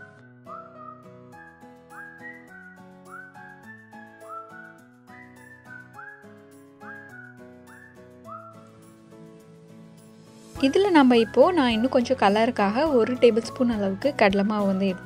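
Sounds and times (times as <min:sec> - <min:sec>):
whistled tune: 0:00.0 - 0:09.0, 0:10.6 - 0:12.2, 0:13.3 - 0:15.0.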